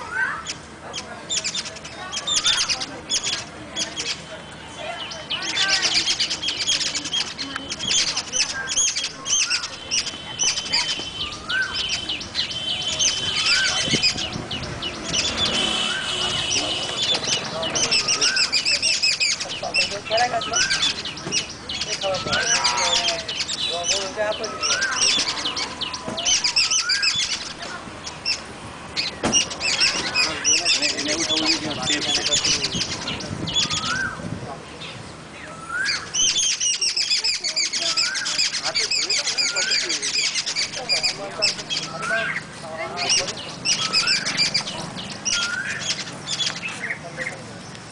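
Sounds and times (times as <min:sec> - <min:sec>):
birds chirping: 0:00.0 - 0:47.9.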